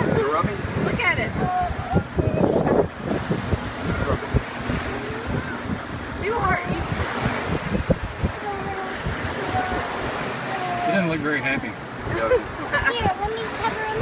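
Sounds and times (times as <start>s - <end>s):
faint voices: 0.0s - 7.0s, 8.2s - 14.0s
sea surf washing on beach: 0.0s - 14.0s
wind buffeting microphone: 0.0s - 14.0s.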